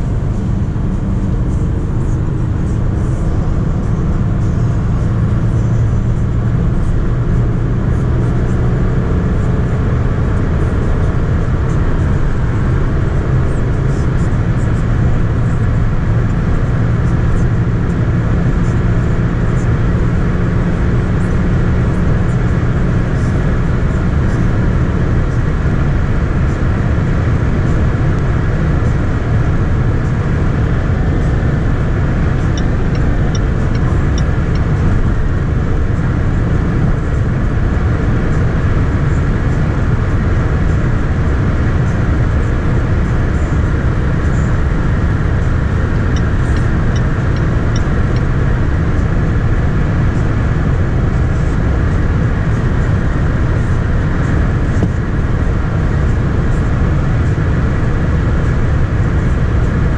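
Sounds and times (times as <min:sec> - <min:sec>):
car cabin road and wind noise: 0:00.0 - 0:59.9
engine drone: 0:00.0 - 0:59.9.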